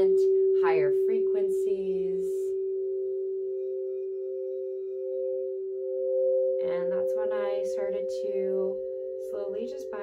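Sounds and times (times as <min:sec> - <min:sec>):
crystal singing bowl tone: 0:00.0 - 0:10.0.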